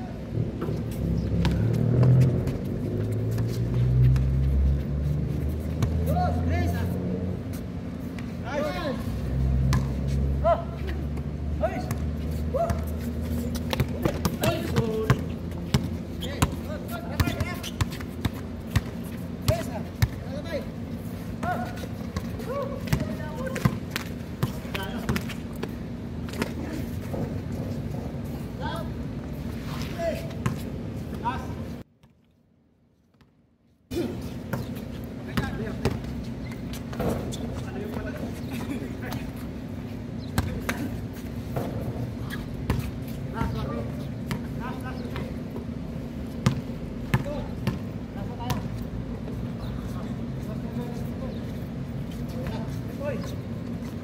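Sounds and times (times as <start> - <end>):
basketball bouncing on hard court: 12.7 - 20.2, 21.4 - 26.6, 46.4 - 47.9.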